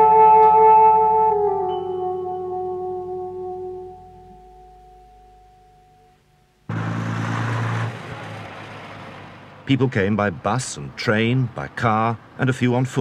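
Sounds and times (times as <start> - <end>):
soundtrack music held notes: 0.0 - 6.6
road noise: 6.2 - 13.0
coach engine running: 6.7 - 12.6.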